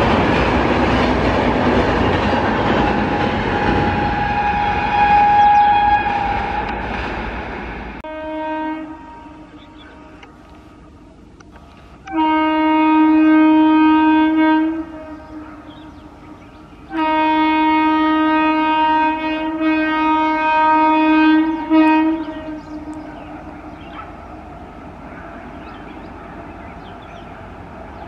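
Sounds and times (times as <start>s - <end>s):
train rumble: 0.0s - 28.0s
train horn blasts: 3.4s - 7.0s, 8.0s - 10.4s, 12.0s - 24.0s.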